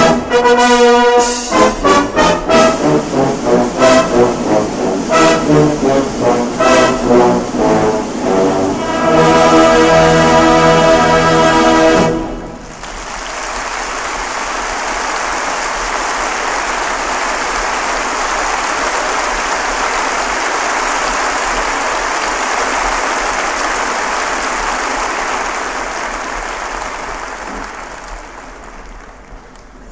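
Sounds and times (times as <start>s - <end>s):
audience applauding: 0.0s - 29.9s.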